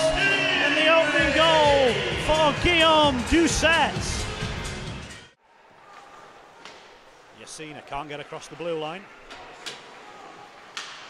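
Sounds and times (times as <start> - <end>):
ice rink arena ambience: 0.0 - 11.0.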